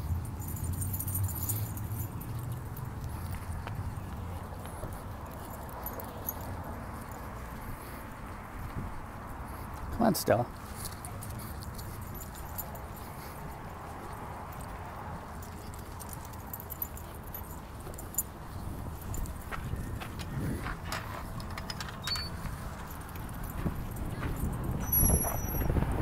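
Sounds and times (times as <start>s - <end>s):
dog leash jingling: 0.0s - 3.4s, 4.7s - 8.0s, 9.5s - 20.1s, 20.8s - 25.8s
outdoor background noise: 0.0s - 26.0s
footsteps on dirt path: 0.6s - 25.8s
chain-link gate clicks and knocks: 20.8s - 23.5s.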